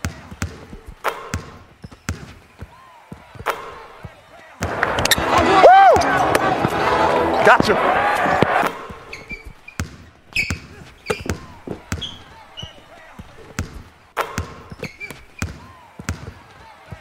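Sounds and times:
basketball bouncing on hardwood: 0.0 - 5.2, 8.4 - 17.0
sneakers squeaking on floor: 0.0 - 17.0.

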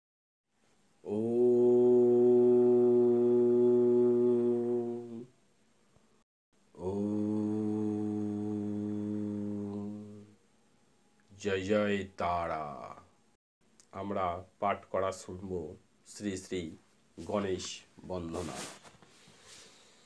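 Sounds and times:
man chanting low held tones: 6.8 - 10.3.

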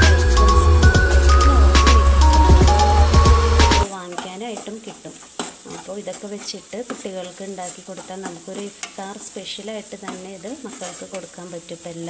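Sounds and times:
music with heavy beat: 0.0 - 3.9
light sizzle: 0.0 - 12.0
spatula scraping frying pan: 3.8 - 12.0
spatula knocking on pan: 4.0 - 9.1, 10.0 - 11.3.

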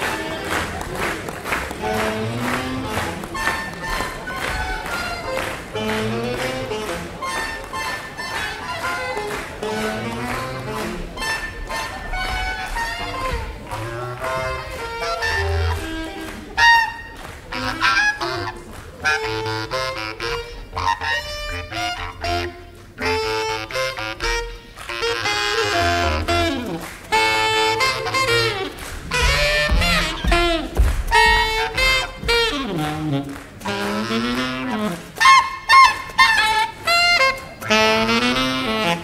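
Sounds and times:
alto saxophone playing jazz: 0.0 - 39.0
reed instruments honking and squawking: 0.0 - 39.0.

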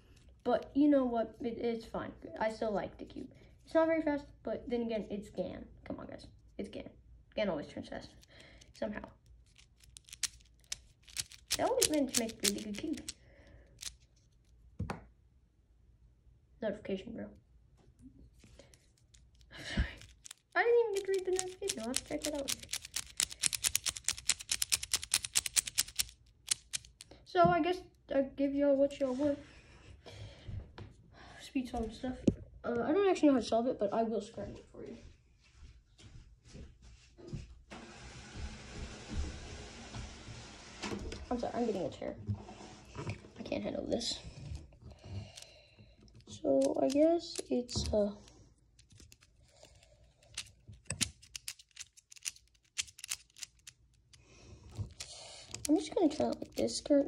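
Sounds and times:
puzzle cube plastic clicks: 9.4 - 14.0, 18.8 - 27.1, 46.5 - 48.0, 48.8 - 57.0.

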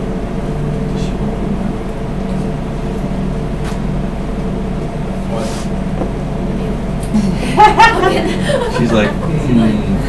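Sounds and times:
low mechanical hum of machinery: 0.0 - 10.0.

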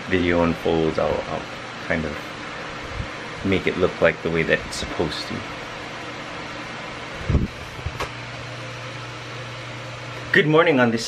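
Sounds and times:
electric fan humming: 0.0 - 11.0.

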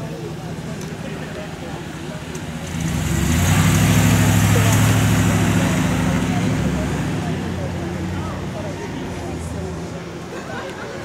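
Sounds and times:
car driving past: 2.6 - 8.6.

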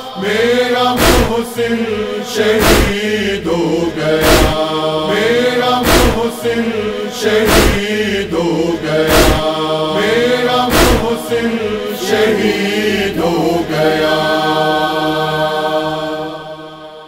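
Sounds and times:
men chanting a lament: 0.0 - 17.0
deep thumps: 1.0 - 1.6, 2.5 - 3.2, 4.2 - 4.8, 5.8 - 6.5, 7.4 - 8.1, 9.0 - 9.6, 10.7 - 11.3.

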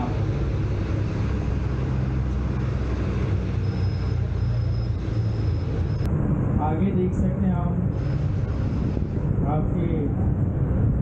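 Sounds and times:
bus engine humming: 0.0 - 11.0
faint high beep: 3.6 - 6.1.

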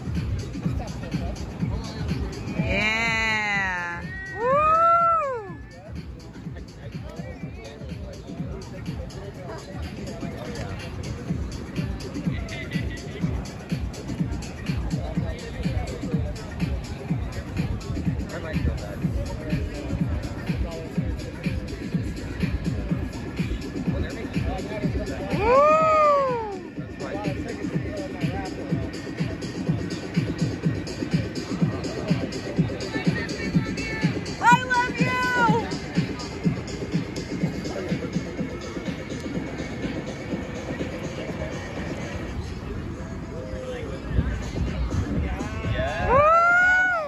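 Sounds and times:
music with steady beat: 0.0 - 43.0
electronic dance music: 30.1 - 42.0.

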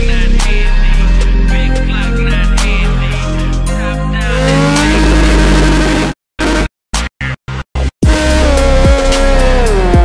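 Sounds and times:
loud music: 0.0 - 7.1, 8.0 - 10.0
motorcycle engine revving: 4.3 - 6.7, 8.0 - 10.0.

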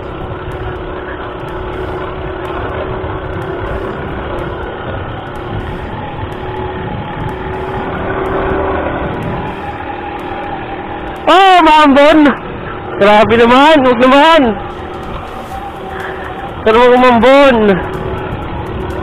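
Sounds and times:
motorcycle engine running: 0.0 - 19.0
wind noise on microphone: 0.0 - 19.0.

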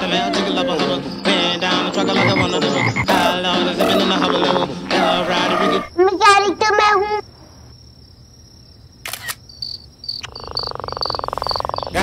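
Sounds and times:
high chirps: 0.1 - 5.9, 9.2 - 12.0.

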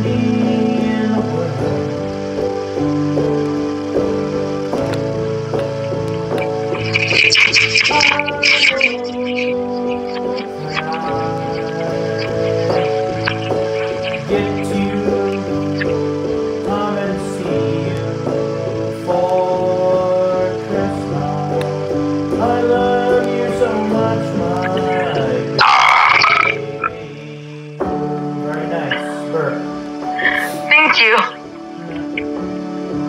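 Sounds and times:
person singing: 0.0 - 2.2, 6.8 - 29.5
electronic keyboard chords: 0.0 - 33.0.

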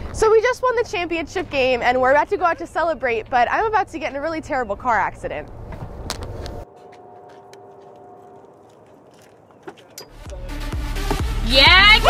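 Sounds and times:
light footsteps: 5.5 - 10.2.

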